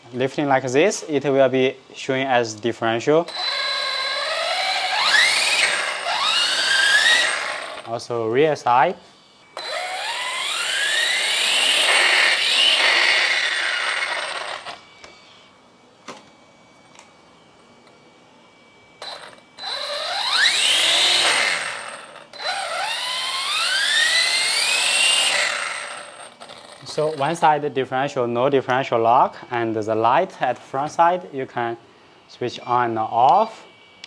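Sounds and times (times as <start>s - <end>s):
electric motor whining up: 3.3s - 7.9s, 9.5s - 15.3s, 19.0s - 27.5s.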